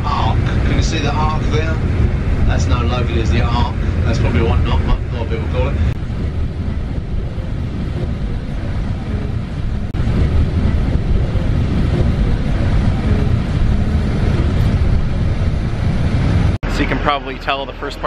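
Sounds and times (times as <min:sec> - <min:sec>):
bus engine and road rumble: 0:00.0 - 0:18.0.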